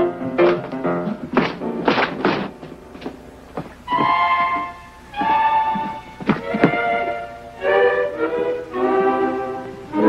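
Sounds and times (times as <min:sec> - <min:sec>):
dull thuds: 0:00.4 - 0:07.2.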